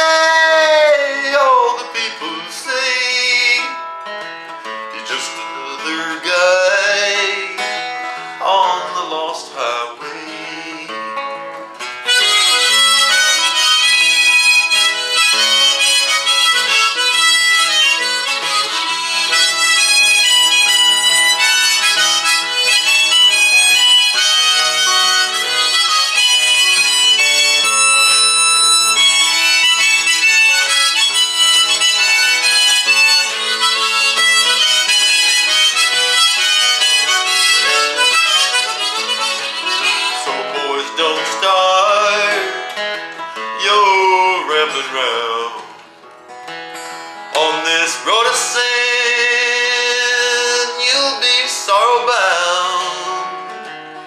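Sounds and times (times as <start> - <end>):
harmonica solo: 0.0 - 45.5, 46.4 - 54.0
strummed acoustic guitar: 0.0 - 54.0.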